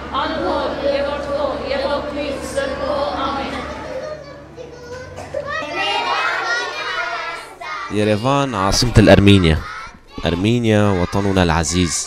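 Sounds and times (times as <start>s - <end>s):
young children chattering: 0.0s - 8.0s, 9.2s - 12.0s.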